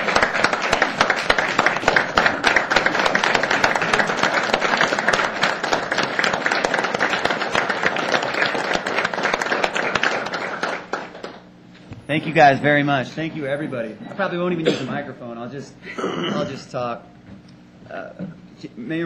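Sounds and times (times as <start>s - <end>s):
crowd applauding: 0.0s - 11.5s.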